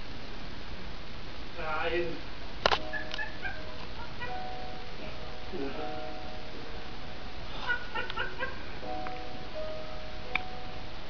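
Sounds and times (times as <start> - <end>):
voice: 5.5 - 5.9.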